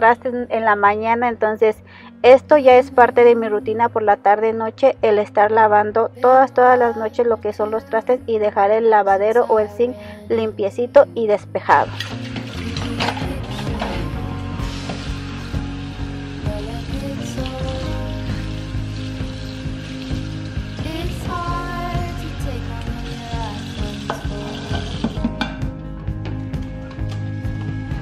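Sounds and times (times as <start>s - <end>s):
tap water running into sink: 11.8s - 25.6s
pans and utensils clinking: 24.0s - 25.6s.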